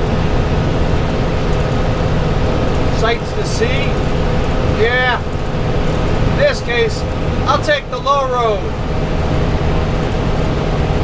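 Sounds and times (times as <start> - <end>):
bus engine drone: 0.0 - 11.0
road noise: 0.0 - 11.0.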